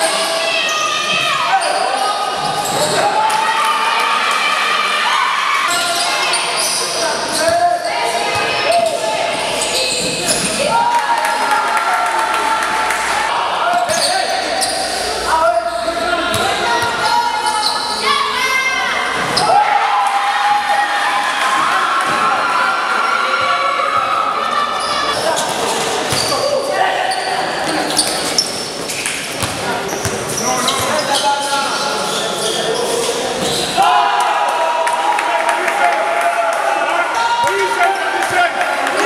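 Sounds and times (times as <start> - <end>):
people shouting: 10.6 - 25.4, 33.8 - 39.0
basketball bouncing on court: 29.4 - 31.0.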